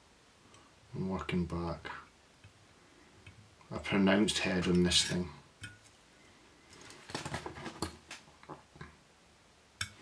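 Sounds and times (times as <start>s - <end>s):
small clicks and rustles: 6.6s - 9.0s.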